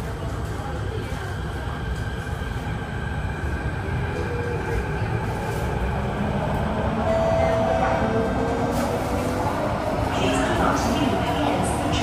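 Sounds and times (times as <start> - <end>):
train wheels rumbling on track: 0.0 - 12.0.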